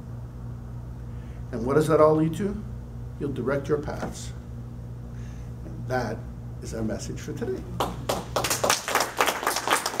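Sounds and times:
small group clapping: 7.8s - 10.0s.

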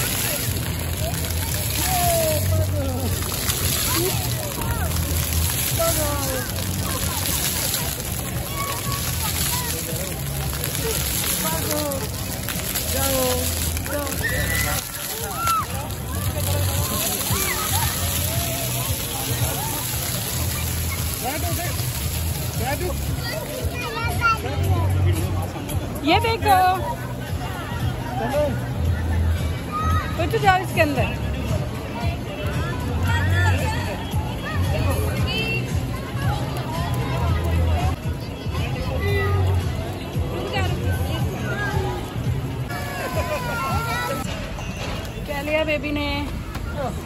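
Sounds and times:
fountain jets splashing on paving: 0.0s - 47.0s
children calling: 42.7s - 44.3s.

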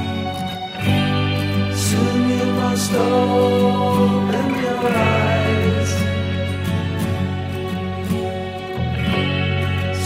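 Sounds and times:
psychedelic progressive rock music: 0.0s - 10.0s.

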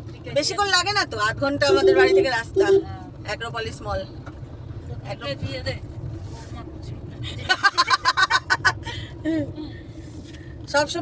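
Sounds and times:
car engine and road noise: 0.0s - 11.0s.

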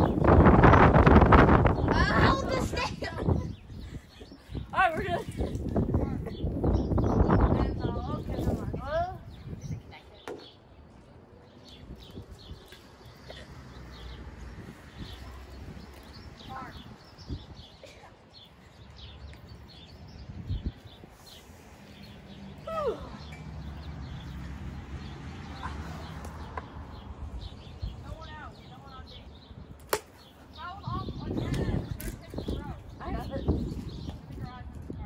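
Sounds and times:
birds chirping: 0.0s - 35.0s.

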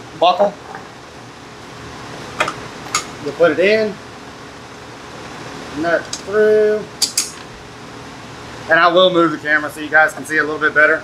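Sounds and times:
low room hiss: 0.0s - 11.0s
man speaking: 0.1s - 0.7s, 3.2s - 4.0s, 5.7s - 7.0s, 8.7s - 11.0s.

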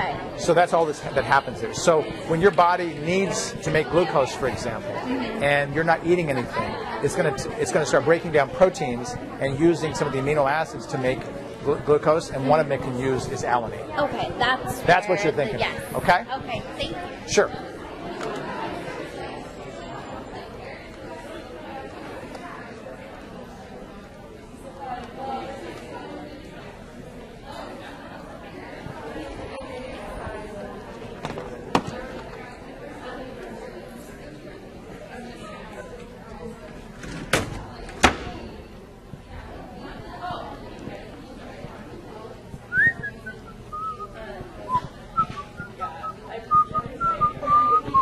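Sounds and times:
background chatter of people: 0.0s - 48.0s
murmur of people talking: 0.0s - 48.0s.

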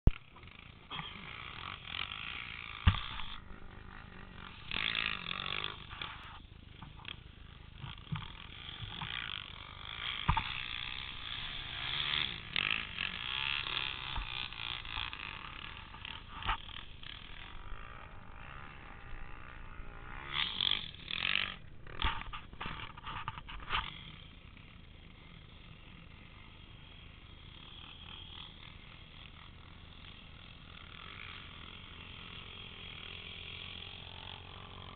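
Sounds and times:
distant quad engines revving: 0.0s - 34.9s.

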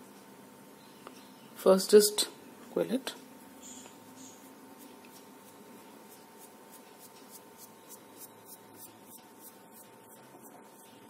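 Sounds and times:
paper rustling and rubbing: 4.2s - 11.0s.

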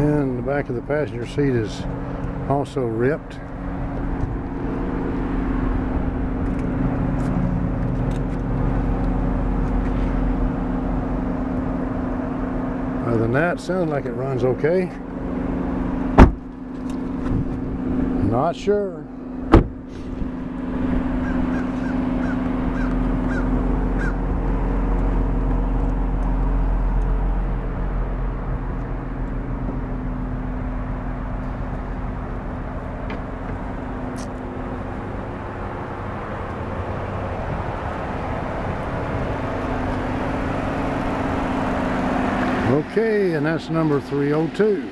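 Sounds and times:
car engine idling: 0.0s - 44.9s.

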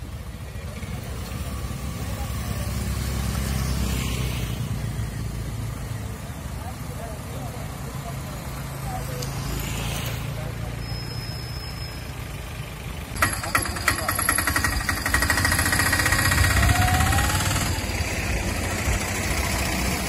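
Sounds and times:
auto-rickshaw engine idling: 0.0s - 20.0s
vehicle engines running: 0.0s - 20.0s.

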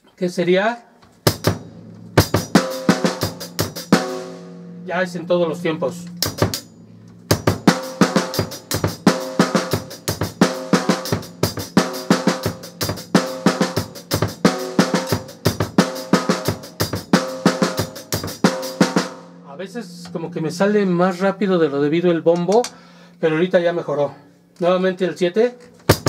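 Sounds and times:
bass drum hits: 1.2s - 21.4s.

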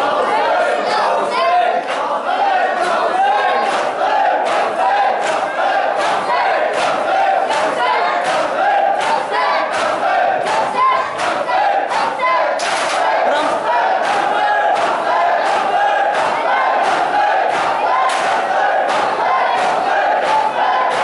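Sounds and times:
crowd of men chanting: 0.0s - 21.0s
hand slaps: 12.5s - 13.2s, 14.0s - 21.0s.

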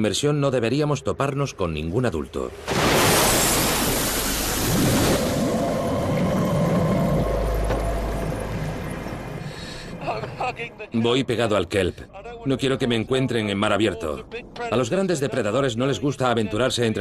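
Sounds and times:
muffled underwater rush: 2.2s - 10.4s
loud splash: 2.5s - 6.9s.

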